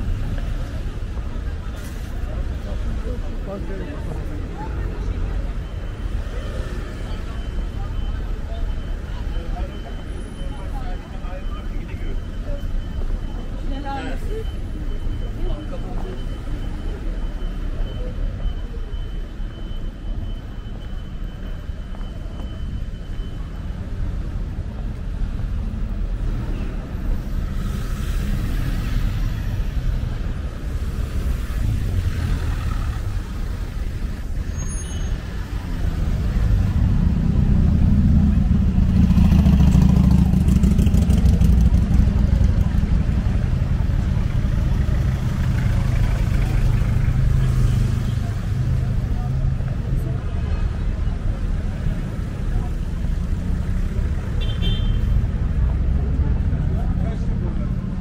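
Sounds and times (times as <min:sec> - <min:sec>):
cars and vans passing: 0:00.0 - 0:58.0
murmur of pedestrians: 0:00.0 - 0:58.0.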